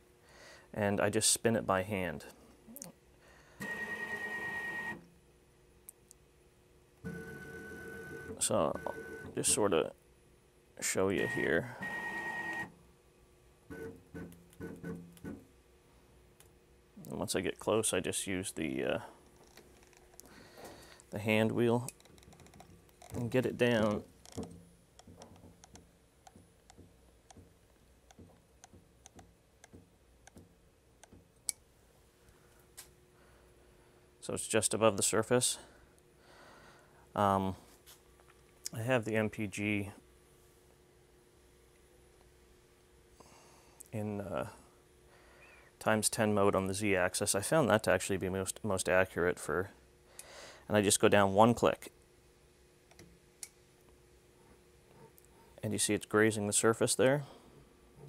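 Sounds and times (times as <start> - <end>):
faint steady hum: 0.0 - 58.0.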